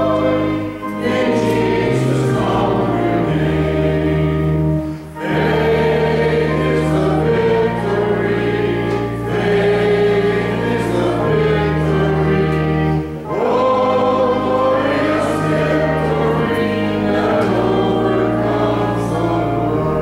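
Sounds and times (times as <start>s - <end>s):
group singing a hymn: 0.0s - 20.0s
held chords: 0.0s - 20.0s.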